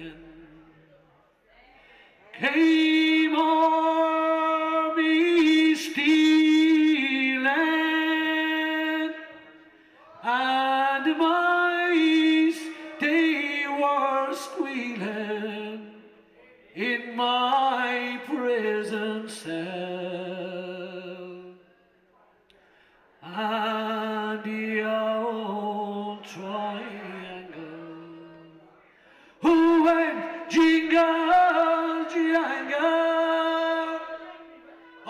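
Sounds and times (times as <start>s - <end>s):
man singing unaccompanied: 2.3s - 9.6s, 10.2s - 16.1s, 16.8s - 21.6s, 23.2s - 28.6s, 29.4s - 34.6s.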